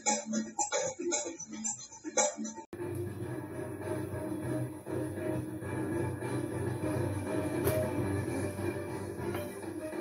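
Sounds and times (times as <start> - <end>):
tv theme music: 0.0 - 10.0.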